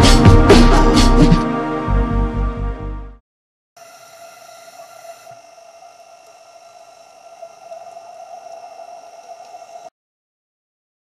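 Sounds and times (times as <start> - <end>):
low hiss: 3.8 - 9.9
steady underwater hum: 3.8 - 9.9
faint clicks: 6.2 - 9.9.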